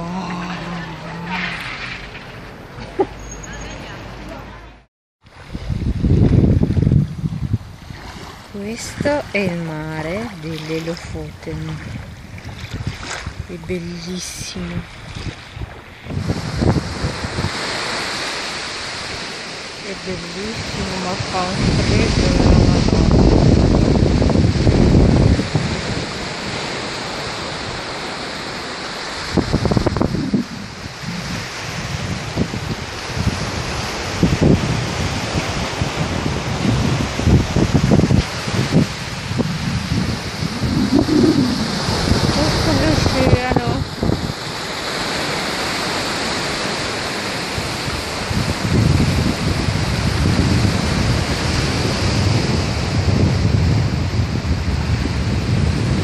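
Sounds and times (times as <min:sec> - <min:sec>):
wind gusting against microphone: 0:00.0 - 0:56.0
small waves breaking on beach: 0:05.3 - 0:56.0.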